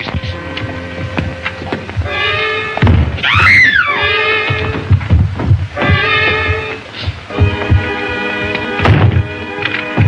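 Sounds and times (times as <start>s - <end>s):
background music: 0.0s - 10.0s
body falling thud: 2.8s - 3.6s, 4.5s - 6.8s, 8.8s - 9.3s.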